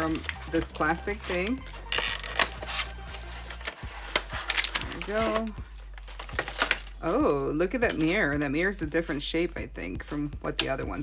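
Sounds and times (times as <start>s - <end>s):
plastic packaging clicking and crackling: 0.0s - 7.0s.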